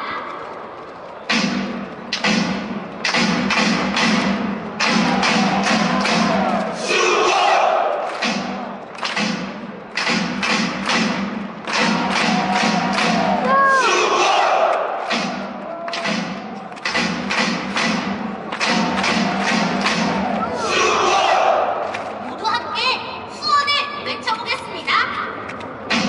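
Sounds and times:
steady drum beat: 0:01.3 - 0:06.5, 0:08.2 - 0:13.5, 0:15.0 - 0:20.4
crowd chanting in unison: 0:04.1 - 0:09.5, 0:10.2 - 0:22.2.

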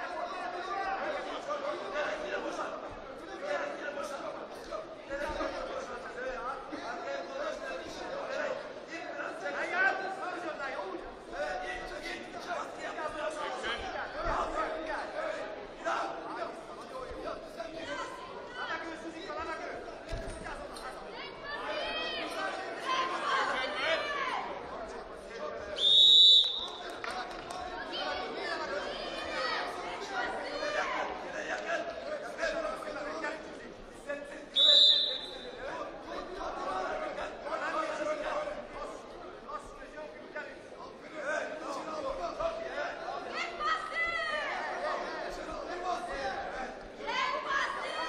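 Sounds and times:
people shouting and chattering: 0:00.0 - 0:48.0
people talking and calling out: 0:00.0 - 0:48.0.

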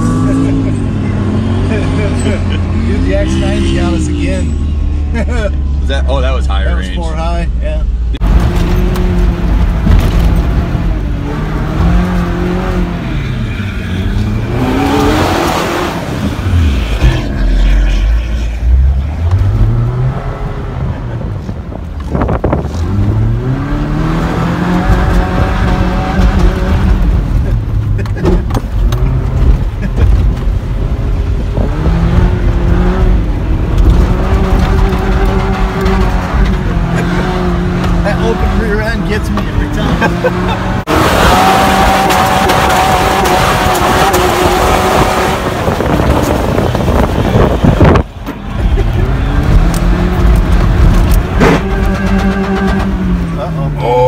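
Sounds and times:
truck engine revving: 0:00.0 - 0:06.2, 0:08.2 - 0:54.0
tyre and wind noise: 0:18.8 - 0:53.4.

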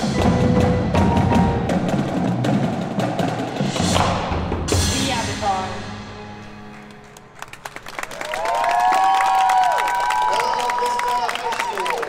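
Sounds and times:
percussion ensemble: 0:00.0 - 0:12.0
audience applause and cheering: 0:06.6 - 0:12.0.

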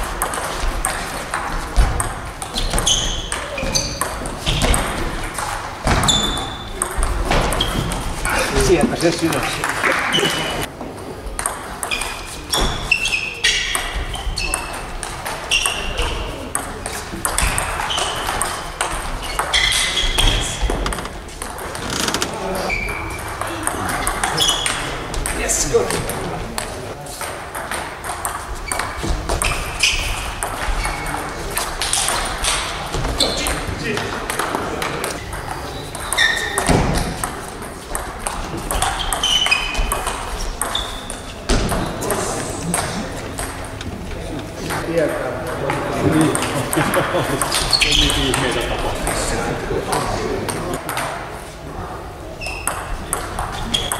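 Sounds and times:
table tennis balls struck: 0:00.0 - 0:10.6, 0:11.3 - 0:21.9, 0:22.7 - 0:43.9, 0:44.6 - 0:51.3, 0:52.4 - 0:53.9.

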